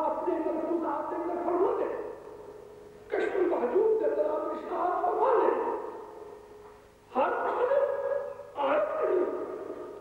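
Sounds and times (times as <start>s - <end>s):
man speaking over public address: 0.0s - 2.2s, 3.1s - 6.0s, 7.1s - 9.6s.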